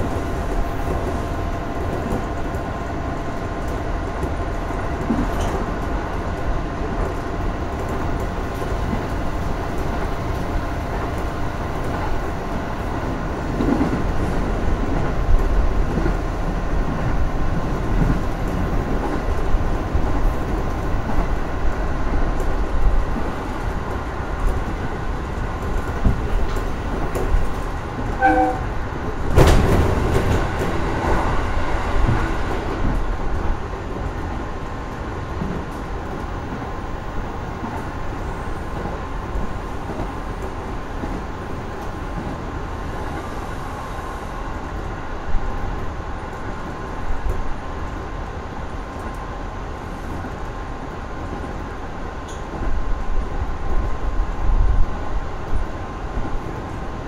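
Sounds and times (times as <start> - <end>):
train rushing through tunnel: 0.0 - 57.0
train wheels rumbling: 0.0 - 57.0
short pitched tone: 28.2 - 28.7.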